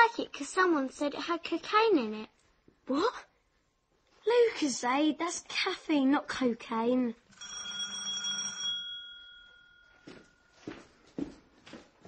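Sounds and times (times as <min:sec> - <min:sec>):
doorbell chime: 0:07.4 - 0:10.6.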